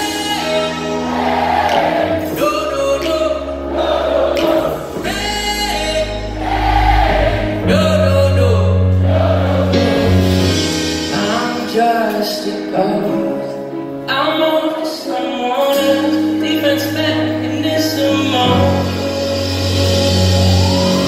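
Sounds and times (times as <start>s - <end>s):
live band music through pa: 0.0s - 21.0s
person singing: 0.0s - 21.0s.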